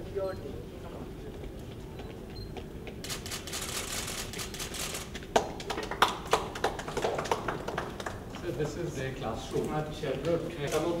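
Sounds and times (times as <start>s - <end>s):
small group clapping: 4.8s - 8.8s.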